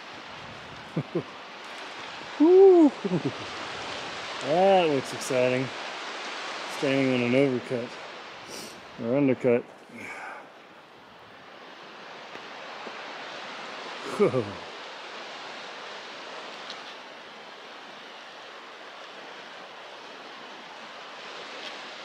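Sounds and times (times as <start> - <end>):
river rushing over rocks: 0.0 - 22.0.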